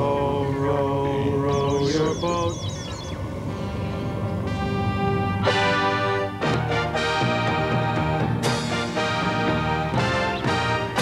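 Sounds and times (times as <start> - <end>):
computer voice intoning numbers: 1.0 - 3.0.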